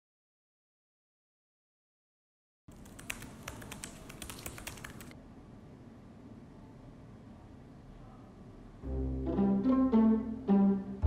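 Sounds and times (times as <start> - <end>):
typing on a laptop keyboard: 2.7 - 5.2
low steady room hum: 2.7 - 11.0.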